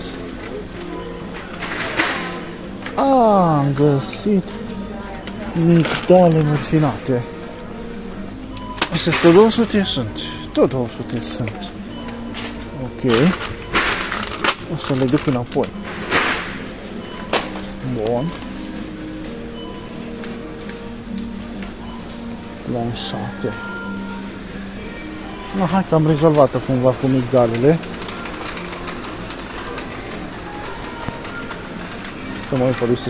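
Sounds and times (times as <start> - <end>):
faint in-store music: 0.0 - 33.0
plastic packet crinkling: 5.2 - 7.0, 13.0 - 15.8
trolley wheels rattling on tiles: 5.2 - 7.1, 13.0 - 16.6, 25.9 - 33.0.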